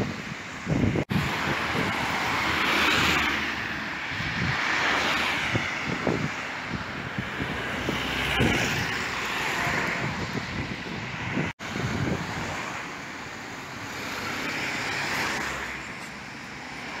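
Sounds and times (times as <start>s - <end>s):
cars passing: 0.0s - 17.0s.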